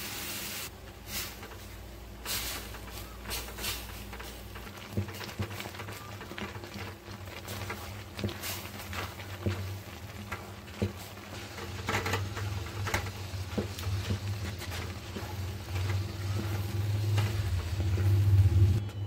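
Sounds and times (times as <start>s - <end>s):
spoon stirring in pan: 0.9s - 19.0s.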